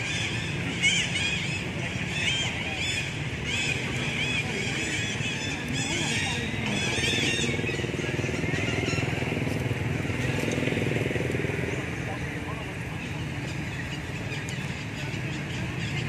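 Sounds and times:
faint indistinct voices: 0.0s - 16.0s.

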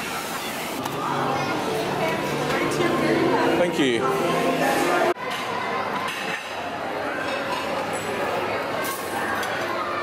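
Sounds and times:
dishes and cutlery clinking: 5.2s - 9.7s.

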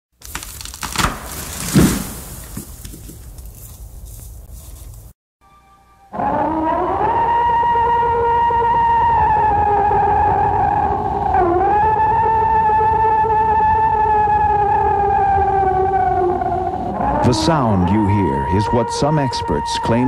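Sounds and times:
long high wailing call: 5.5s - 20.0s.

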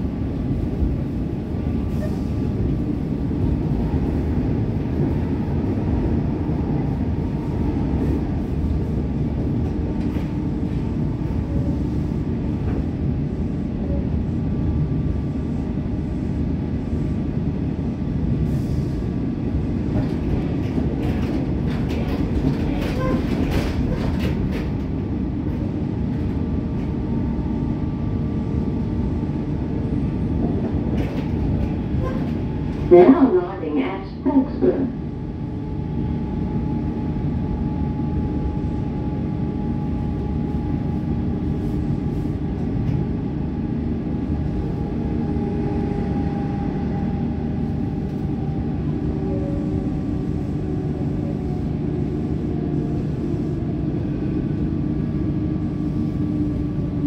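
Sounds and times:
train wheels rumbling on track: 0.0s - 57.0s.

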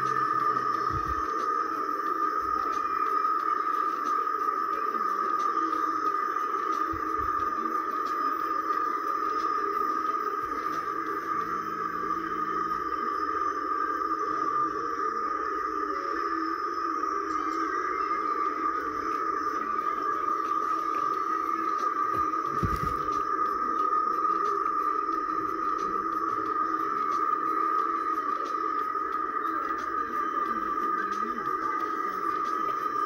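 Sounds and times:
steady drone from speakers: 0.0s - 33.0s.

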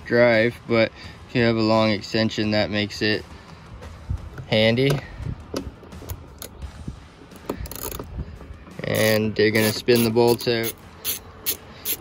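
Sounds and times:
ratchet clicking: 7.6s - 8.0s, 9.0s - 12.0s.

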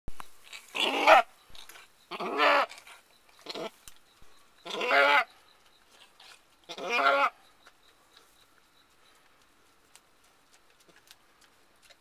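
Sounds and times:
goat bleating: 2.1s - 2.7s, 4.6s - 5.3s, 6.7s - 7.4s.

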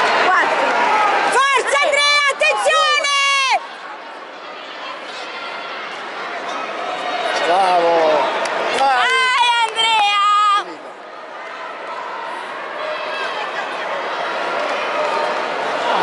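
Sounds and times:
crowd murmur: 0.0s - 16.0s.

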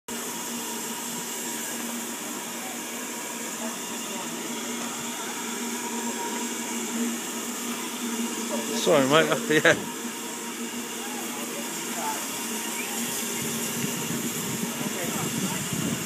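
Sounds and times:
hiss of escaping steam: 0.1s - 16.0s
steady low hum: 0.2s - 16.0s.

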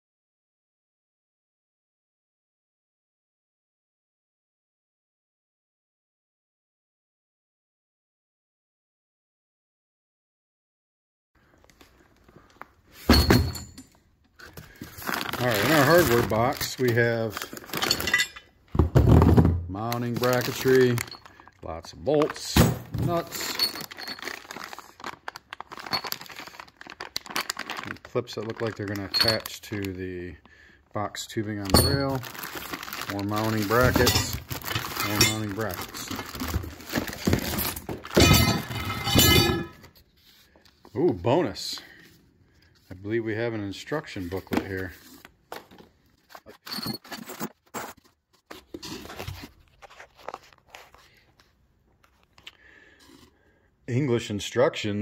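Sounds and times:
plastic bags crinkling: 14.4s - 18.5s, 19.8s - 30.0s, 31.4s - 39.2s.

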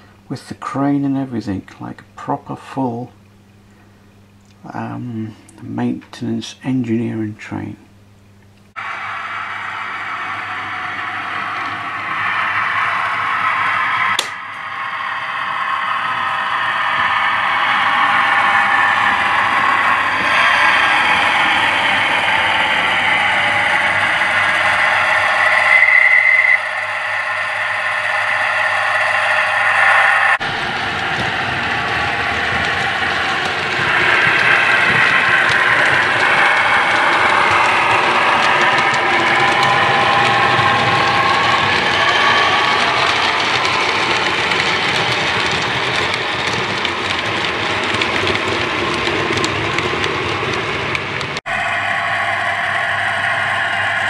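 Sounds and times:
wheels running on track: 8.8s - 54.0s
model train motor whirring: 16.9s - 49.9s.

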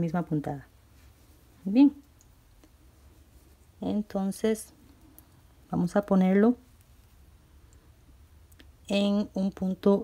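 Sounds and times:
woman speaking: 0.0s - 0.7s, 1.6s - 2.1s, 3.8s - 4.8s, 5.7s - 6.7s, 8.8s - 10.0s
faint soft clicks: 2.0s - 2.8s
handling crocheted fabric: 2.5s - 4.6s.

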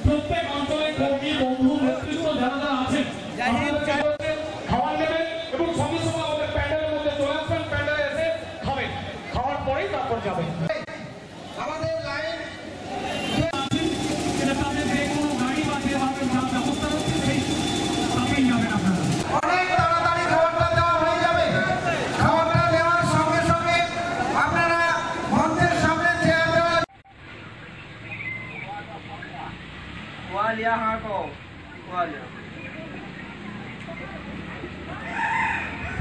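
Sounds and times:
people talking indistinctly: 0.0s - 35.1s
rooster crowing: 35.0s - 36.0s.

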